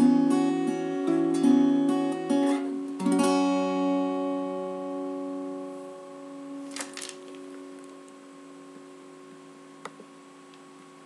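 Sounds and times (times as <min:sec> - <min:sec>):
acoustic guitar chord ringing: 0:00.0 - 0:09.8.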